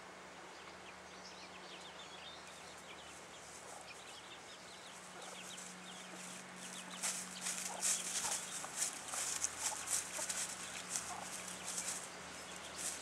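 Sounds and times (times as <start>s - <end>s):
chicks peeping: 0.6s - 13.0s
rustling in dry leaves: 2.3s - 13.0s
hen clucking: 5.0s - 13.0s.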